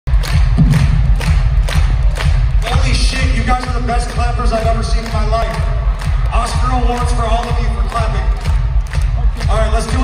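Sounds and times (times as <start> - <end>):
booming bass drum beat: 0.1 - 10.0
crowd clapping in time: 0.1 - 10.0.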